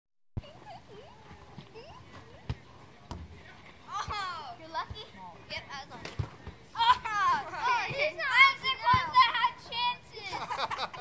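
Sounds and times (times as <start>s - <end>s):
ball hitting wooden walls: 2.1s - 4.2s.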